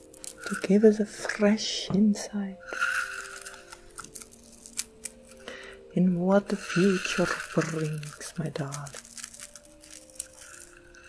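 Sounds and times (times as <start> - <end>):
mint leaf tearing: 0.0 - 0.8, 2.7 - 5.6, 6.6 - 11.0.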